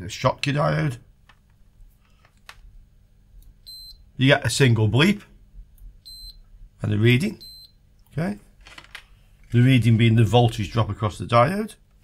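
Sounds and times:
multimeter high-pitched bleep: 3.7s - 4.0s, 6.1s - 6.4s, 7.4s - 7.8s.

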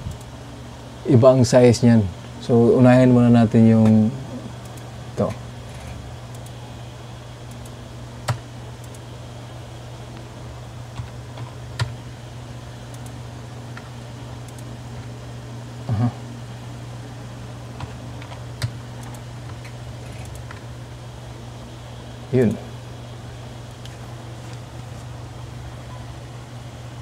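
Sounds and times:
steady low hum: 0.0s - 27.0s.

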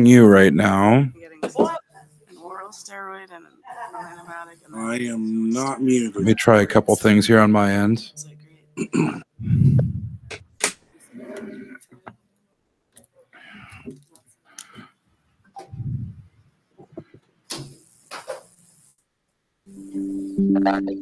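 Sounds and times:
faint murmured voices: 0.0s - 9.2s
man clearing his throat: 8.8s - 9.4s
low muffled thumps: 9.4s - 10.6s, 15.6s - 16.2s.

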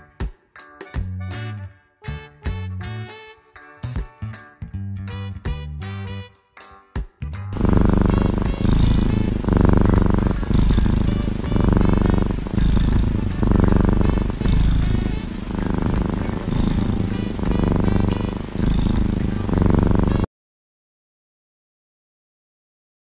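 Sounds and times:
kitten purring loudly: 7.6s - 20.3s.

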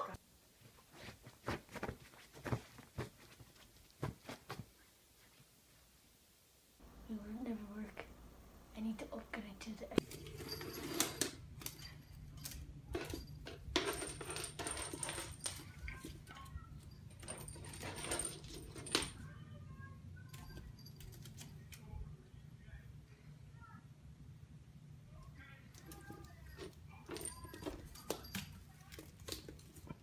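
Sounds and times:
toy balls rattling and jingling: 10.0s - 19.2s, 25.8s - 30.0s.

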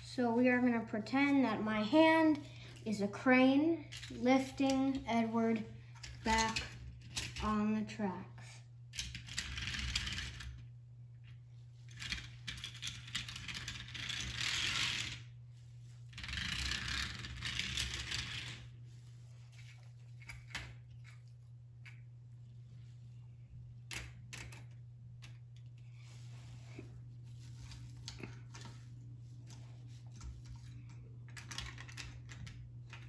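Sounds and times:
steady low hum: 0.0s - 33.0s.

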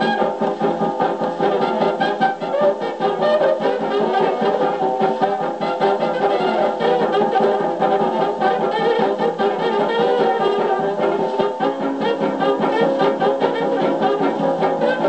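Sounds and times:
jazz dance band on old record: 0.0s - 15.0s.

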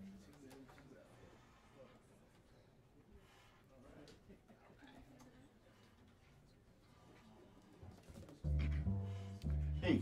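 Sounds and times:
jazz band playing: 8.4s - 10.0s
low upright bass notes: 8.4s - 10.0s.

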